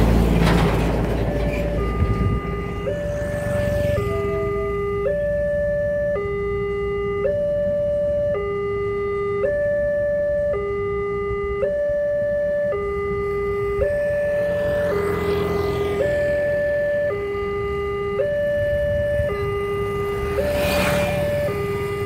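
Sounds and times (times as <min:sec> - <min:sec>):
level crossing two-tone alarm: 0:01.3 - 0:22.0.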